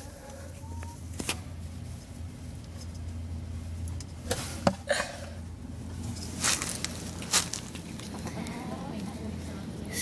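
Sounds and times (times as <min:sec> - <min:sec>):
chicken clucking: 0:00.0 - 0:01.1, 0:07.8 - 0:09.4.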